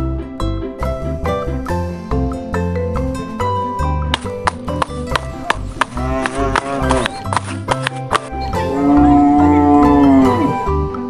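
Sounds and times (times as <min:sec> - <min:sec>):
background music: 0:00.0 - 0:11.0
cow mooing: 0:05.4 - 0:07.3, 0:08.5 - 0:10.8.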